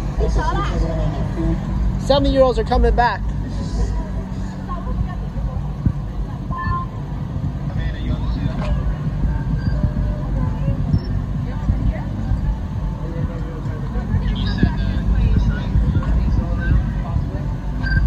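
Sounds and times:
indistinct voices: 0:00.0 - 0:18.0
vehicle engine idling: 0:00.0 - 0:18.0.

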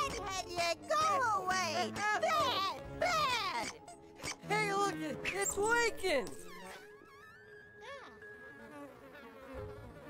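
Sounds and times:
cartoon cries and grunts: 0:00.0 - 0:05.2.

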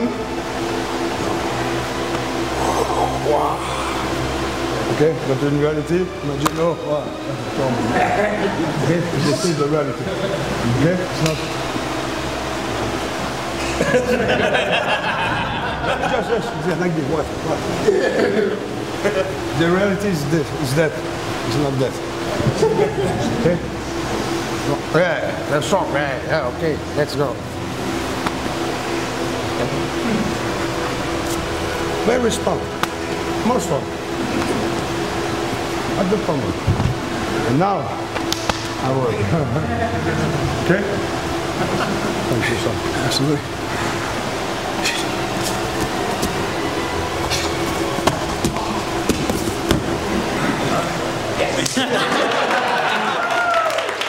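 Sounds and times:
room noise: 0:00.0 - 0:54.0
ventilation fan hum and hiss: 0:00.0 - 0:54.0.

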